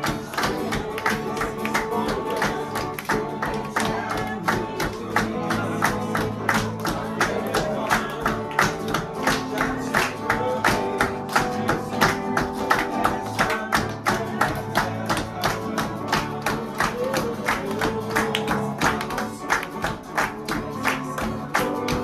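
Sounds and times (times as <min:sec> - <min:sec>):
acoustic guitar: 0:00.0 - 0:22.0
group clapping in rhythm: 0:00.0 - 0:22.0
voices singing: 0:00.0 - 0:22.0.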